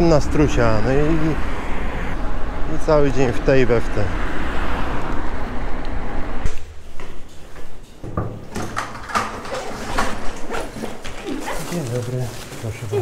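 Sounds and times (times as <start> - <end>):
wind and road noise: 0.0 - 13.0
sharp clicks and knocks: 7.8 - 11.2
backpack being handled: 9.1 - 13.0.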